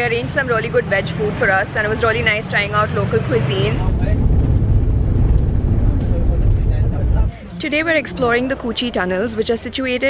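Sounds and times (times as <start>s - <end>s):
road vehicle rumble: 0.0s - 10.0s.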